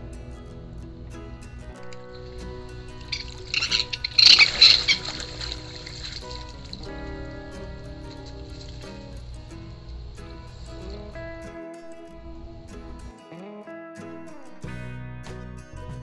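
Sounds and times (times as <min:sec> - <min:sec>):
instrumental background music: 0:00.0 - 0:16.0
splashing in shallow water: 0:02.2 - 0:11.2.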